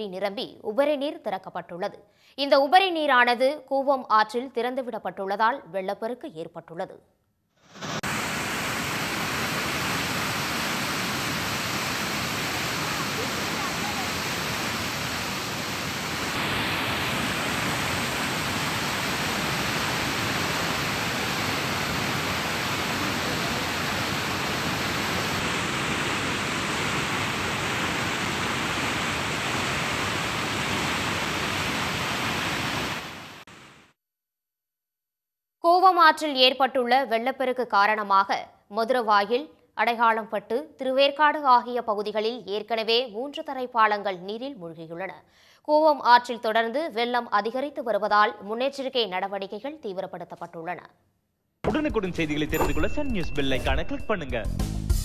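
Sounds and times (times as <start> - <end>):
floodwater rushing over a weir: 8.0 - 33.3.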